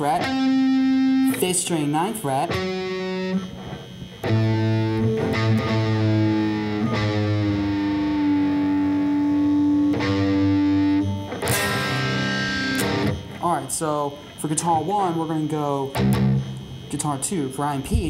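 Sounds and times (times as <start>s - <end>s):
distorted electric guitar chord: 0.0s - 13.4s, 15.8s - 16.7s
guitar note bending while tuning: 2.4s - 13.4s, 15.9s - 16.7s.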